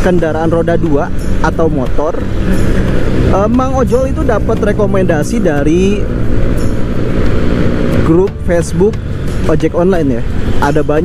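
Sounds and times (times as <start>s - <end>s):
scooter engine: 2.2s - 9.4s.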